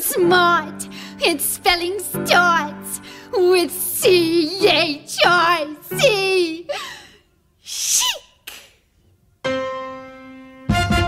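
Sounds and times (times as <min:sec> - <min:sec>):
woman's breathy vocal exclamation: 0:06.7 - 0:08.4.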